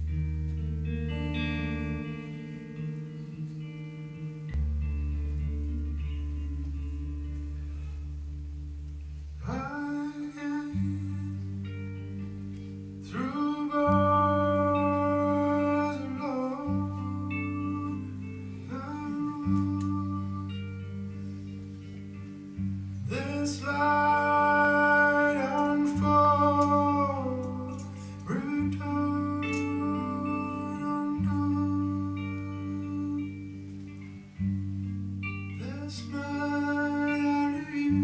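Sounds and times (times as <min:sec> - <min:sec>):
electric guitar picked notes: 0:00.0 - 0:38.0
deep held guitar note: 0:04.0 - 0:37.1.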